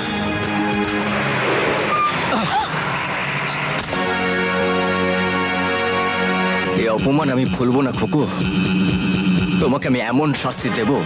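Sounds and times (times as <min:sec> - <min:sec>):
bus engine accelerating: 0:00.0 - 0:11.0
road noise: 0:00.0 - 0:11.0.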